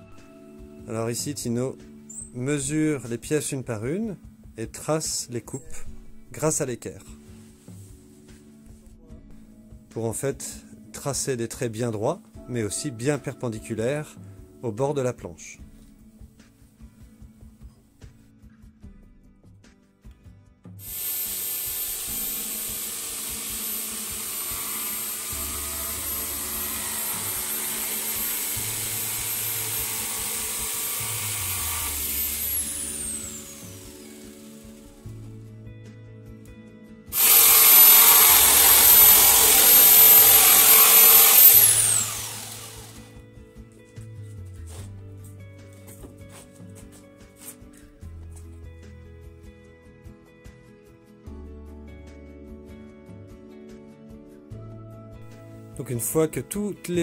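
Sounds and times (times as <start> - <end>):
background music: 0.0 - 57.0
jigsaw cutting wood: 20.8 - 34.8, 37.1 - 43.1.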